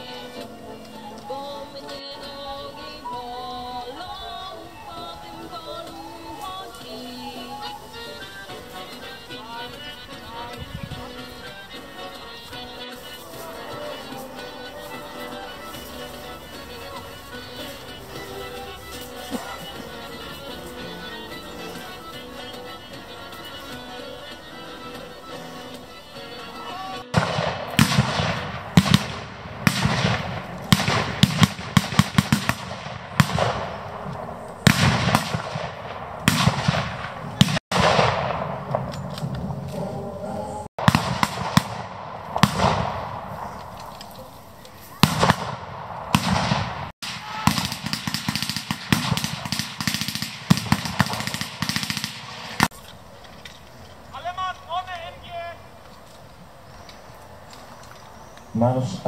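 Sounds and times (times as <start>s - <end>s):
blank gunfire: 27.1s - 39.1s, 40.8s - 43.6s, 45.0s - 52.7s
person calling out: 39.8s - 40.7s.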